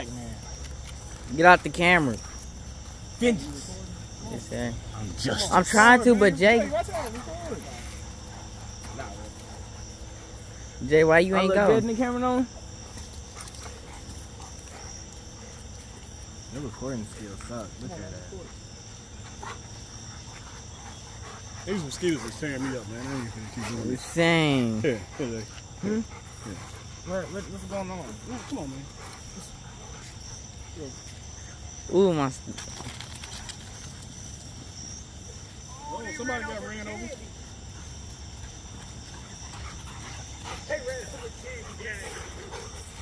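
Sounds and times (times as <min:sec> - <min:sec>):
crickets trilling: 0:00.0 - 0:43.0
dogs moving on grass: 0:00.0 - 0:43.0.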